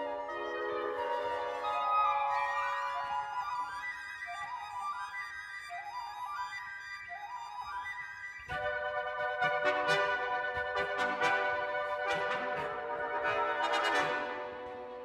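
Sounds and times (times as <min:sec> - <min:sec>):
symphony orchestra playing: 0:00.0 - 0:03.0, 0:08.6 - 0:15.0
violins playing rising figures: 0:08.5 - 0:15.0.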